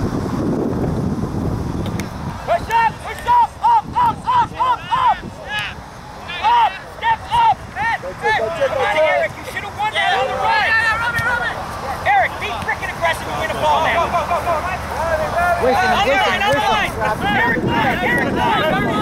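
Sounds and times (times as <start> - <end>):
voices shouting calls: 2.3 - 19.0.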